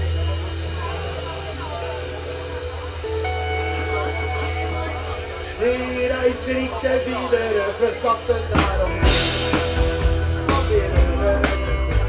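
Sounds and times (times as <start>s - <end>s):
held higher notes: 0.0s - 12.0s
live band instrumental: 0.0s - 12.0s
steady bass line: 0.0s - 12.0s.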